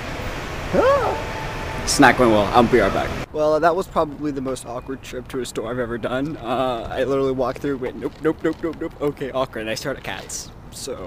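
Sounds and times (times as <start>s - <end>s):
high-pitched call: 0.7s - 2.2s
store background noise: 1.9s - 11.0s.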